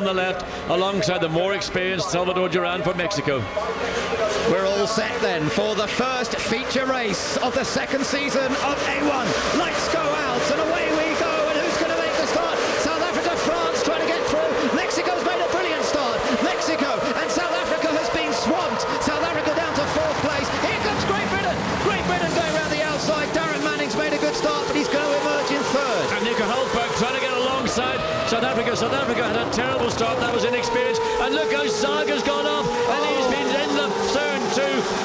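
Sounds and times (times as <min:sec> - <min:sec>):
racing car engines revving: 0:00.0 - 0:35.0.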